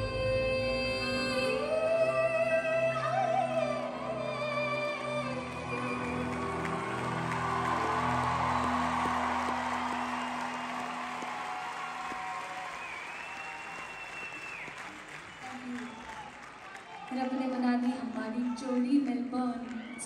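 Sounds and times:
concert audience applauding: 0:04.9 - 0:20.0.

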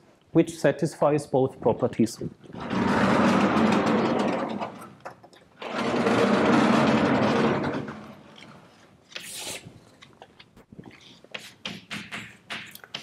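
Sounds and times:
blackboard panels sliding with grinding: 0:02.5 - 0:08.8.

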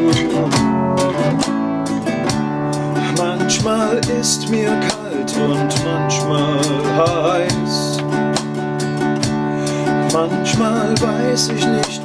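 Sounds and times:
classical guitar strumming chords: 0:00.0 - 0:12.0
programmed backing rhythm: 0:00.0 - 0:12.0.

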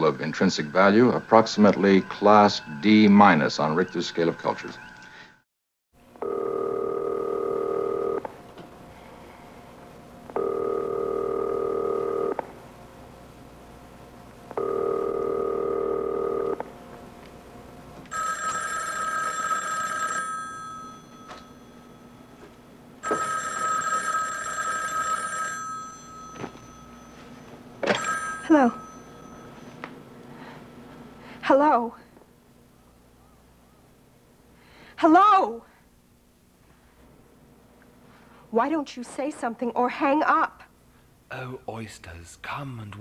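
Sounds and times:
telephone ringing: 0:06.2 - 0:08.3, 0:10.3 - 0:12.5, 0:14.6 - 0:16.6, 0:18.1 - 0:29.8.

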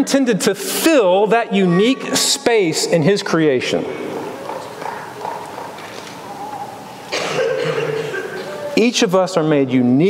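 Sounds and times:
person coughing: 0:07.1 - 0:08.7.

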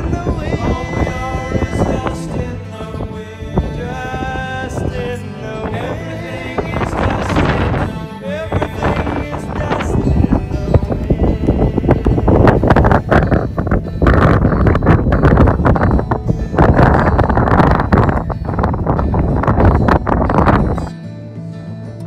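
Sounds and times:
gusty wind on microphone: 0:00.0 - 0:20.9
acoustic guitar music: 0:00.0 - 0:22.0.

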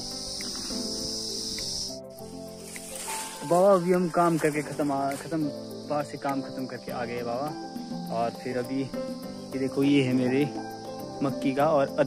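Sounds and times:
background music with held notes: 0:00.0 - 0:12.0
insects chirring: 0:00.0 - 0:12.0.

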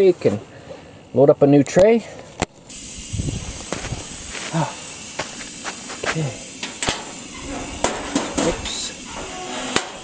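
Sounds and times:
stove burner hissing: 0:00.9 - 0:10.0
stove click: 0:06.6 - 0:07.2.

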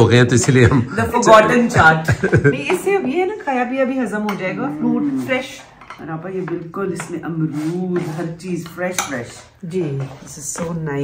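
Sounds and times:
women's voices: 0:00.9 - 0:11.0
spoons clinking against plates: 0:05.4 - 0:07.2, 0:08.6 - 0:09.6.

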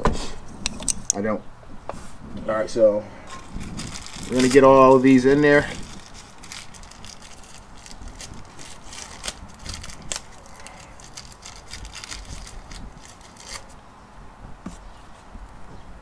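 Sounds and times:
light scraping of metal parts: 0:00.5 - 0:01.3.

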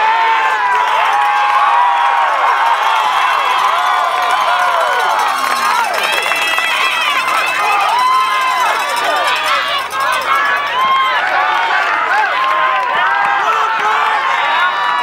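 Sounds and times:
crowd shouting and cheering: 0:00.0 - 0:15.0.

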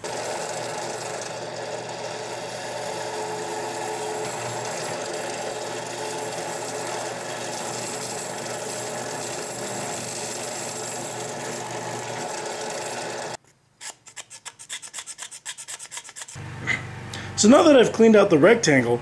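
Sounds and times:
drill press drilling plastic pipe: 0:00.0 - 0:13.4.

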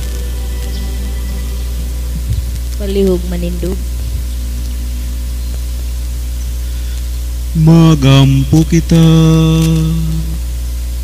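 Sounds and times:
electrical mains hum: 0:00.0 - 0:11.0
faint hiss: 0:00.0 - 0:11.0
priest chanting: 0:07.5 - 0:10.4.

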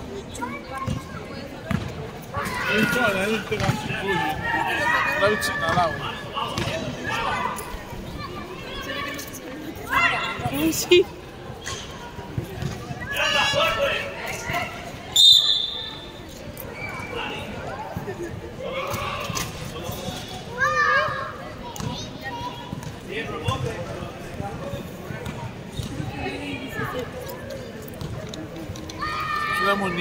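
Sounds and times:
basketball bouncing on hard court: 0:01.7 - 0:01.9.

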